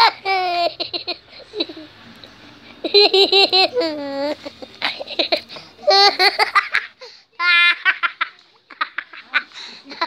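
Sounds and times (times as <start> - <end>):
child laughing: 0.0 - 1.9, 2.8 - 10.0.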